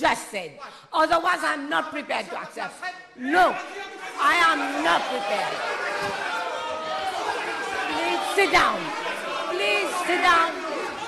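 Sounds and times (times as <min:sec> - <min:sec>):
people chattering: 0:01.8 - 0:11.0.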